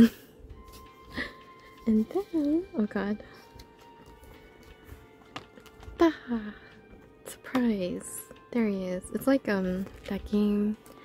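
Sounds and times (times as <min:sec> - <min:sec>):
faint background music: 0:00.0 - 0:11.0.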